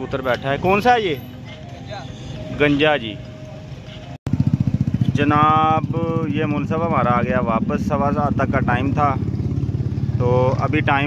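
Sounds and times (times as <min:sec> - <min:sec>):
faint outdoor background: 0:00.0 - 0:11.0
motorcycle engine idling: 0:03.4 - 0:11.0.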